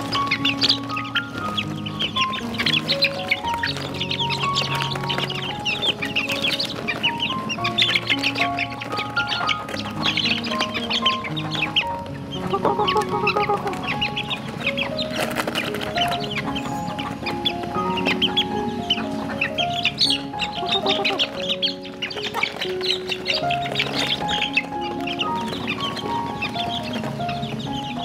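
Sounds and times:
chicks peeping: 0.0 - 28.0
faint background music: 0.0 - 28.0.

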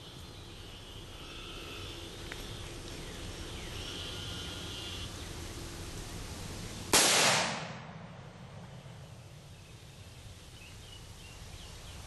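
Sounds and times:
rifle shot: 6.9 - 8.3.

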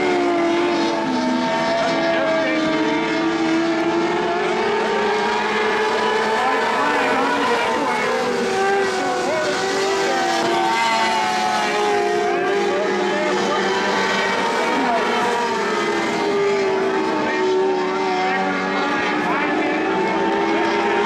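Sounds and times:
race car engines racing: 0.0 - 21.0.

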